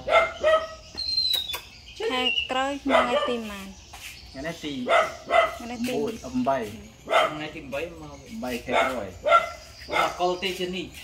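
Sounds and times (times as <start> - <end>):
puppy yipping: 0.0 - 1.7, 2.9 - 3.4, 4.8 - 5.7, 7.1 - 7.6, 8.7 - 10.2.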